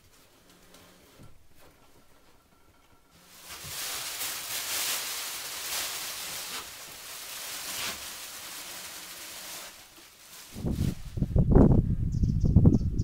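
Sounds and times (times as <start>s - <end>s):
plastic sheeting rustling: 3.1s - 11.5s.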